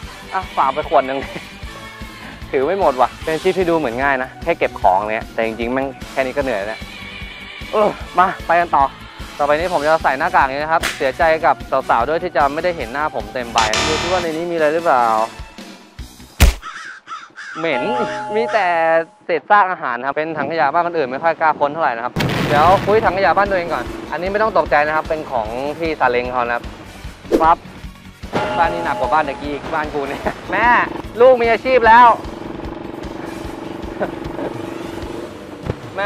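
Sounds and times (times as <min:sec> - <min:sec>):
small motorcycle engine idling: 0:30.5 - 0:35.5.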